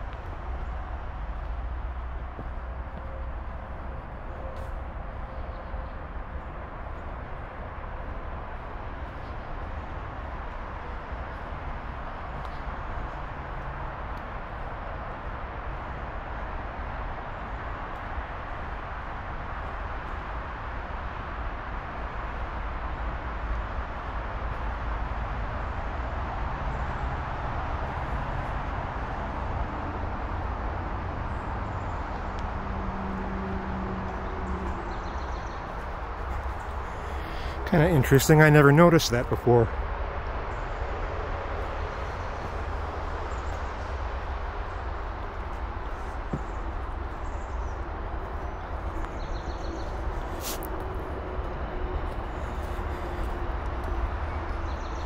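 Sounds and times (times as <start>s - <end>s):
outdoor ambient noise: 0.0s - 55.0s.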